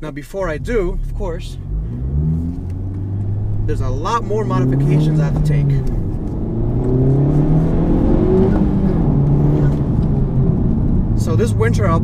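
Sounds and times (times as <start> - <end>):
car engine revving: 0.4 - 12.0.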